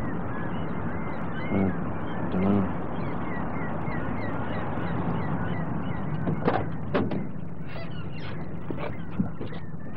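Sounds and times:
high bird calls: 0:00.0 - 0:09.9.

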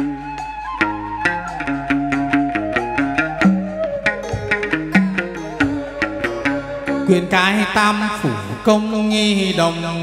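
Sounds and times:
plucked-string melody: 0:00.0 - 0:10.0
drum strikes: 0:01.9 - 0:06.6.

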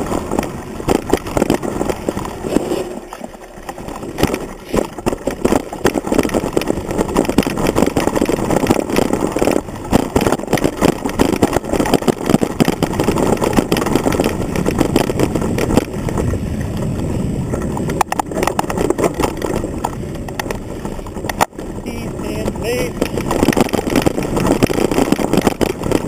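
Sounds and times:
mountain bike rattling on dirt trail: 0:00.0 - 0:26.0.

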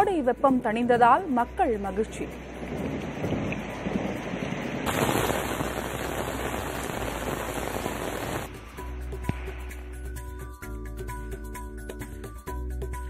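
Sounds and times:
heavy rain pouring on a street: 0:02.8 - 0:08.5.

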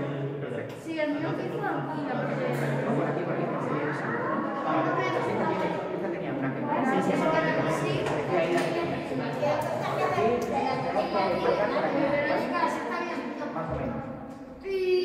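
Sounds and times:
children chattering: 0:00.0 - 0:15.0.

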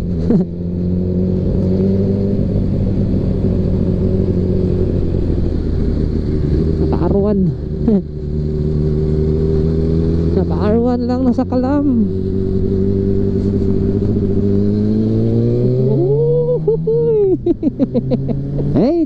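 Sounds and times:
scooter engine cruising: 0:00.0 - 0:19.0.

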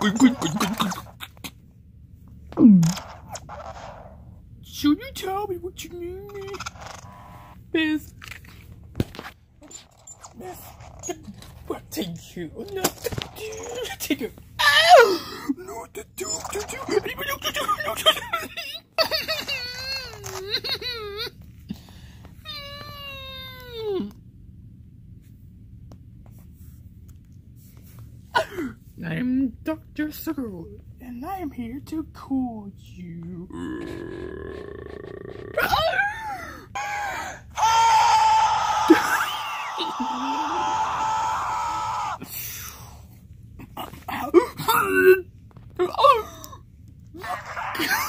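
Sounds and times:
person squealing: 0:00.0 - 0:01.6, 0:14.6 - 0:21.3, 0:33.5 - 0:42.3, 0:47.2 - 0:48.0.

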